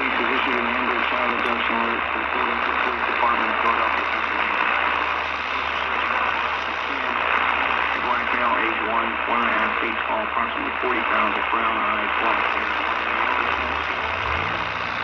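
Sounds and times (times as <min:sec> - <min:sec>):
voice over radio speaker: 0:00.0 - 0:14.6
radio static hiss: 0:00.0 - 0:15.0.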